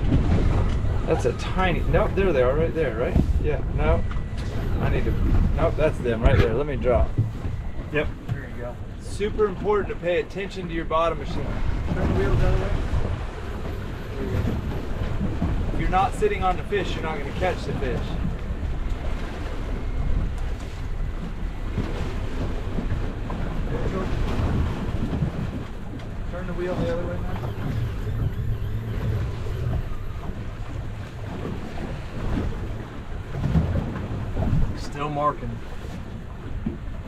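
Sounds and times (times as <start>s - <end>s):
wind on microphone: 0.0s - 10.0s, 10.8s - 35.0s
waves washing against boat hull: 0.0s - 37.0s.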